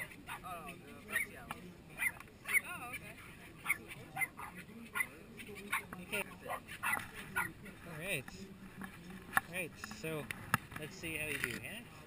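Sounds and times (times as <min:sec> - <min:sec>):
dog barking and yipping: 0:02.0 - 0:02.7, 0:03.6 - 0:05.1, 0:06.5 - 0:07.5.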